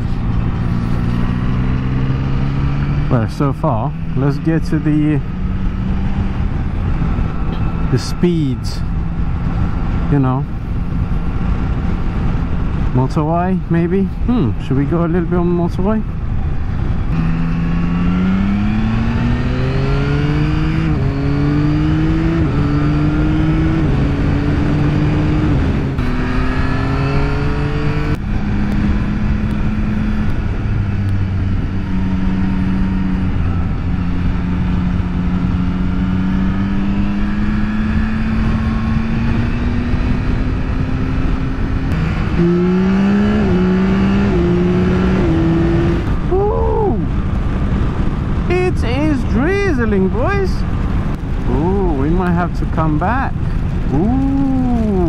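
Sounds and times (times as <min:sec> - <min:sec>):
motorcycle engine accelerating: 0:00.0 - 0:55.0
wind and road noise: 0:00.0 - 0:55.0.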